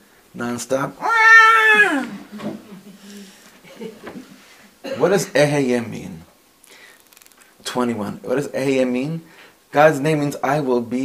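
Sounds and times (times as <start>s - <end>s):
man imitating baby crying: 1.0s - 2.1s.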